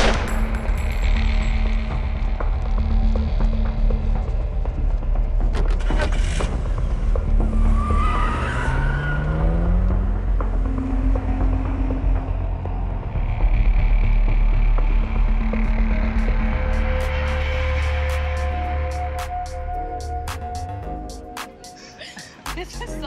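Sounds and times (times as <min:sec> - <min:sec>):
low rumbling film score: 0:00.0 - 0:23.0
car engine revving: 0:05.6 - 0:19.3.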